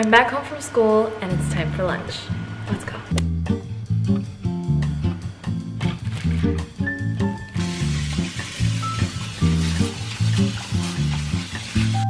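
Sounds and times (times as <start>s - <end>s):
background music with pulsing bass: 2.4s - 10.0s
tap water spraying into colander: 7.5s - 12.0s.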